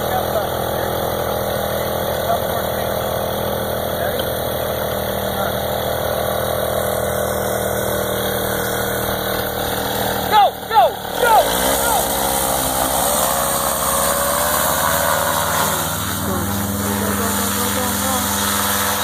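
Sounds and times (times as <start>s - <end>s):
paramotor engine and propeller: 0.0s - 19.0s
loud shouts: 10.2s - 12.3s.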